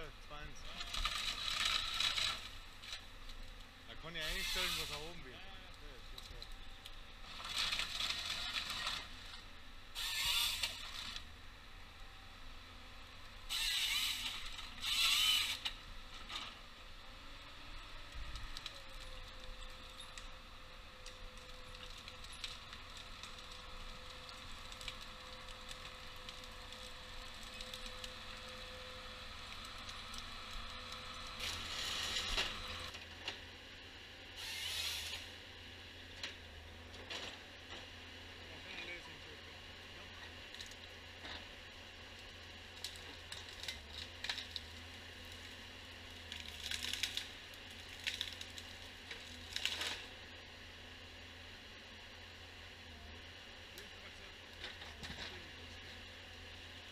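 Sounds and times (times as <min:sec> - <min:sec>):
forest harvester running: 0:00.0 - 0:56.9
harvester head noisy bursts: 0:04.2 - 0:05.2, 0:10.0 - 0:11.2, 0:13.5 - 0:15.7.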